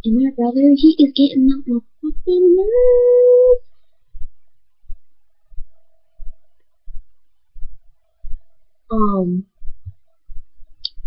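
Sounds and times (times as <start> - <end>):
girl singing a drawn-out note: 0.0 - 3.6
dull low thumps: 0.9 - 11.0.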